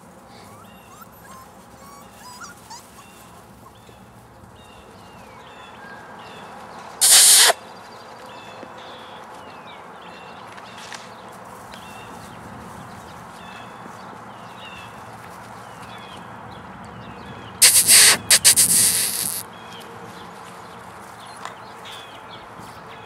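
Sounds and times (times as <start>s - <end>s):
bird chirping: 7.0s - 7.6s, 17.6s - 19.4s
loud noise bursts: 7.0s - 7.6s, 17.6s - 19.4s.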